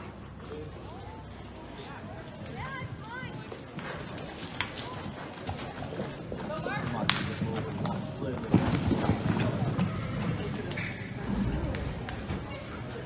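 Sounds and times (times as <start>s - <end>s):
horse hoofbeats galloping: 2.3s - 10.8s.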